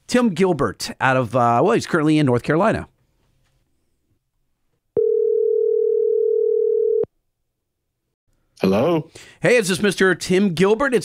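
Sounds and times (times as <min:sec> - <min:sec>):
telephone ringback tone: 0:05.0 - 0:07.1.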